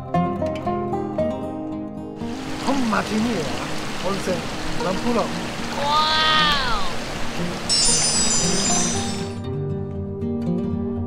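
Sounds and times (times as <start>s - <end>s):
flowing water: 2.2s - 9.4s
shimmering chime: 7.6s - 9.4s.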